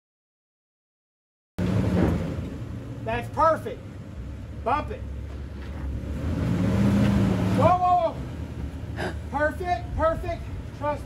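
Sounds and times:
engine running low: 1.6s - 11.0s.

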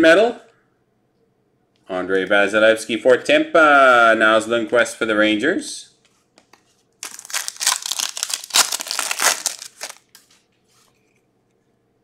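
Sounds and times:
foil wrapper tearing and crinkling: 7.0s - 10.1s.

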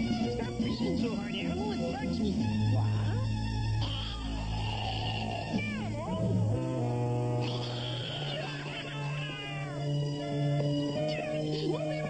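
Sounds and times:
cartoon soundtrack music: 0.0s - 12.0s
high wavering cry: 7.4s - 10.0s.

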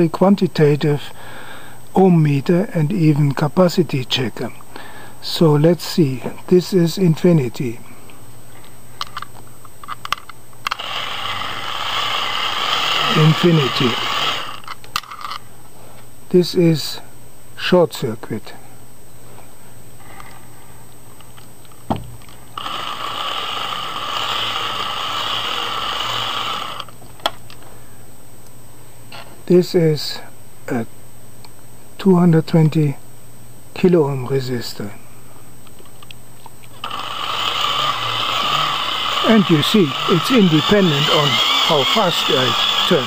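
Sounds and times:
hand-cranked dynamo whirring: 10.7s - 14.7s, 22.6s - 26.9s, 36.8s - 43.0s.

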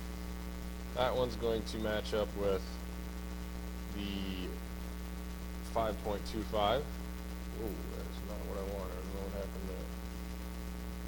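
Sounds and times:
low electrical mains hum: 0.0s - 11.0s
person speaking: 3.9s - 4.6s, 5.7s - 10.0s.

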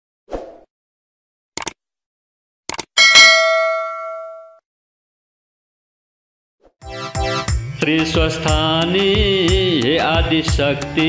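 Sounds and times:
notification bell ding: 3.0s - 4.6s.

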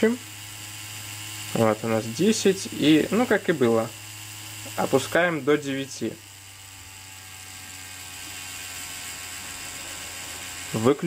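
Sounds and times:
tattoo machine motor whir: 0.0s - 11.0s.

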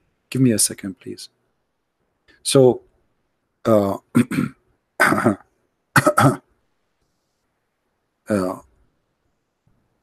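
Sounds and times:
man clearing throat and coughing: 4.1s - 6.5s.

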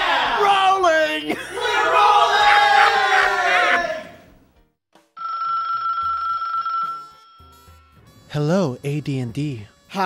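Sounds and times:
telephone ringing: 5.2s - 7.7s.

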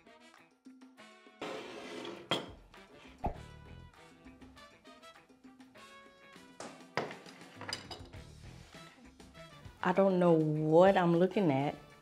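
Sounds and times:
background music: 0.0s - 12.0s
ceramic plate clinking on table: 2.0s - 2.6s, 7.0s - 8.1s.

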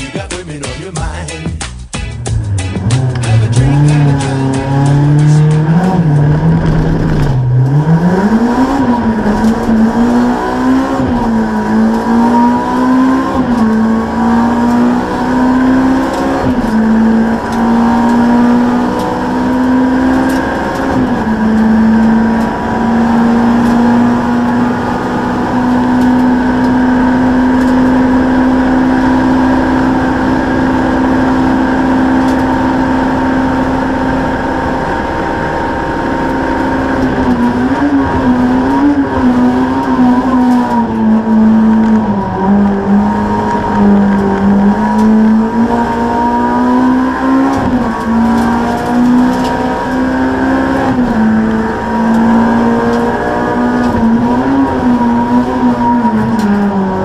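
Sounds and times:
race car engine accelerating: 2.1s - 57.0s.

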